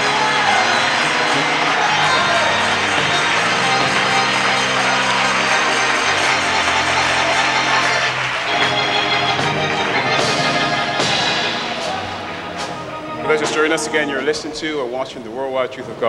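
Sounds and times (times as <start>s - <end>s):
congregation clapping: 0.0s - 13.9s
gospel church music: 0.0s - 16.0s.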